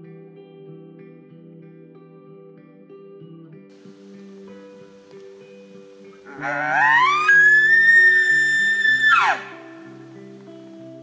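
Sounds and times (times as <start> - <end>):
soft guitar music: 0.0 - 11.0
elk bugle whistle: 5.6 - 10.7.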